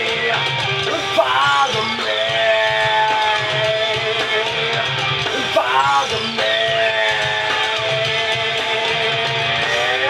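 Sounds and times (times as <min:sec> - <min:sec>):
rock backing music: 0:00.0 - 0:10.0.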